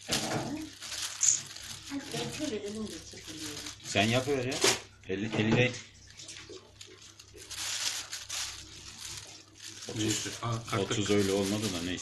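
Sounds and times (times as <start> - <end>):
plastic bag crinkling: 0.0 - 4.9, 5.9 - 12.0.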